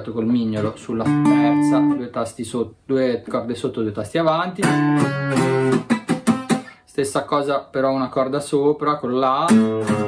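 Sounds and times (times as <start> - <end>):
acoustic guitar plucked notes: 0.3 - 2.0, 4.5 - 6.9, 9.5 - 10.0.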